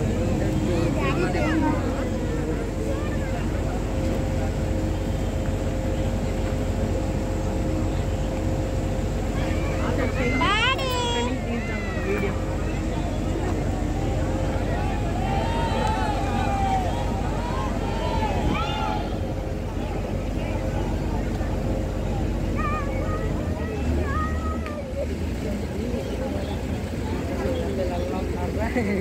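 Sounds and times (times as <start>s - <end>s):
distant voices calling out: 0.0s - 29.0s
steady engine drone: 0.0s - 29.0s.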